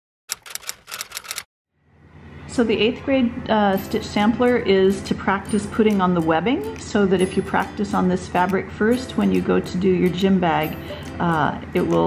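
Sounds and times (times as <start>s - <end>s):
typewriter key clicks: 0.3s - 1.5s.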